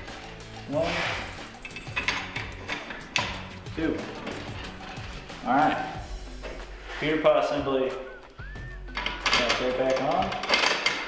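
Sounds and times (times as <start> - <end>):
background music: 0.0 - 11.0
metal clicks and clacks: 1.6 - 5.1, 8.9 - 11.0.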